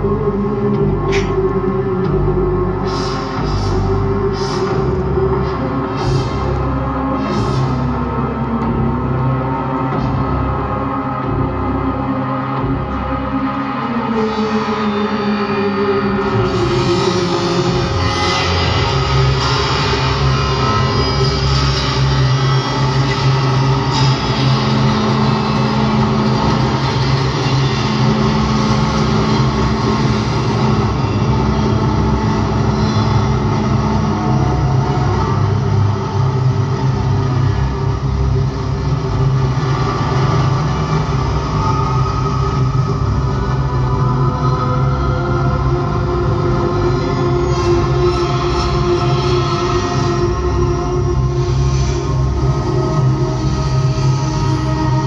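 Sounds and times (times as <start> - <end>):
low bass drone: 0.0 - 55.0.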